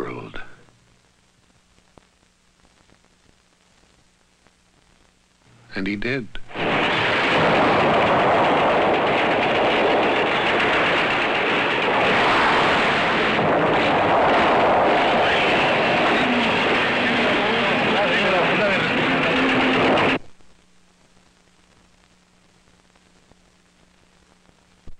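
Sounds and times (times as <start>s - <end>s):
loud roar of dense noise: 6.5s - 20.2s.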